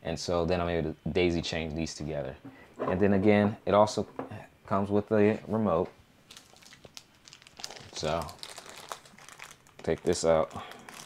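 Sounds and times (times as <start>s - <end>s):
packaging crinkling and rustling: 6.3s - 11.0s.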